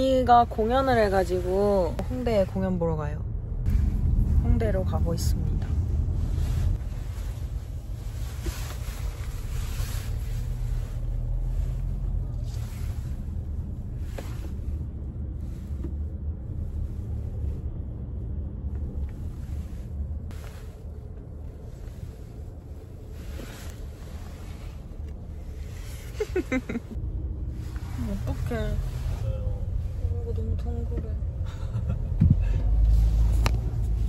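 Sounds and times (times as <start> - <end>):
car road and engine rumble: 0.0 - 34.0.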